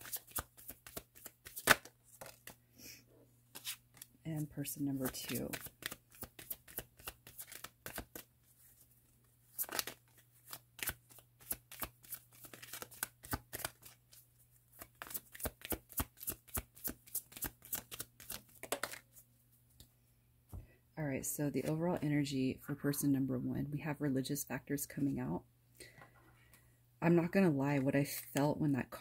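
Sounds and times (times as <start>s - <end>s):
cards being shuffled: 0.0s - 2.6s, 3.5s - 8.9s, 9.5s - 19.3s.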